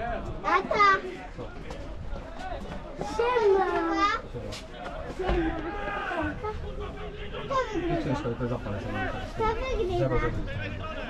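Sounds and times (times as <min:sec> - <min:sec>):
distant shouts of players and spectators: 0:00.0 - 0:11.0.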